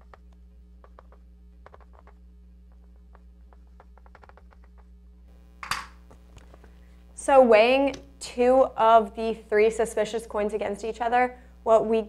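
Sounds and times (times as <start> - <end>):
steady low hum: 0.0 - 12.0
chalk tapping on blackboard: 0.8 - 4.9.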